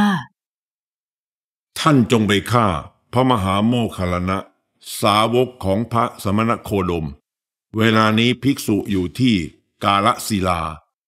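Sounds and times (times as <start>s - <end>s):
narrator speaking: 0.0s - 0.3s, 1.8s - 7.2s, 7.8s - 10.9s.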